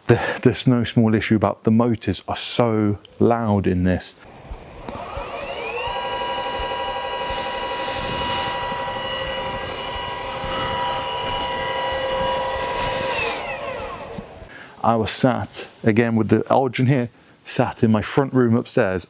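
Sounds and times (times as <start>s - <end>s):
telescope mount motors whining: 4.3s - 14.5s.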